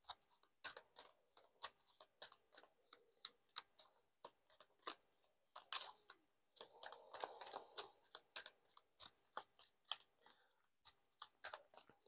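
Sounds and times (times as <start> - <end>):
cards being shuffled: 0.0 - 12.0.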